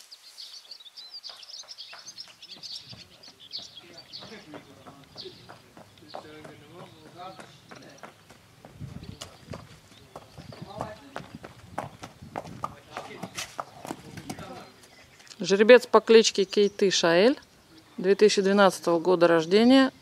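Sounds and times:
horse hooves clip-clopping: 1.1 - 15.4
faint voices talking: 2.2 - 11.6.

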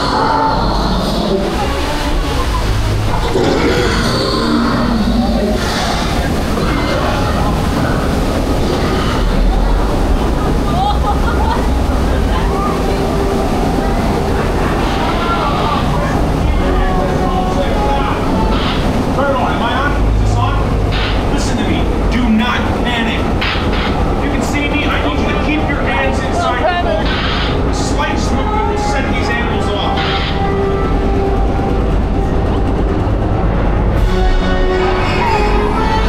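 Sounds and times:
flume ride boat rumbling and rattling: 0.0 - 36.0
man's voice over loudspeakers: 15.5 - 23.4, 24.2 - 27.0, 27.6 - 30.5.

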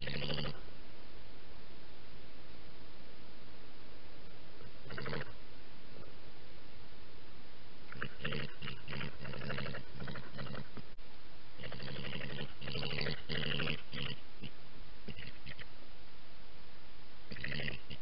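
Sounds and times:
steady hiss: 0.0 - 17.9.

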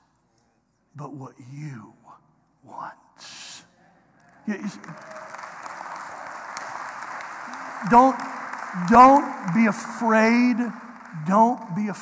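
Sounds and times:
congregation applauding: 4.2 - 12.0.

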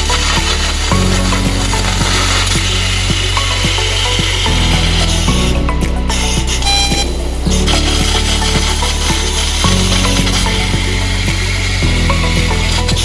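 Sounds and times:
background music with bass notes: 0.0 - 13.0
laser cutting hiss: 0.0 - 13.0.

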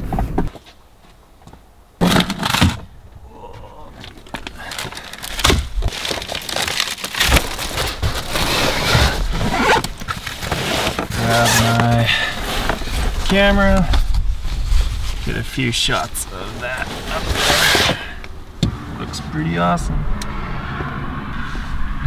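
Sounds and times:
rustling knocks and scrapes: 4.0 - 16.2.

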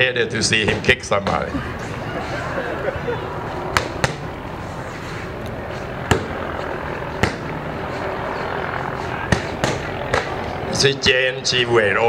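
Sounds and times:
murmur of background noise: 0.0 - 12.0.

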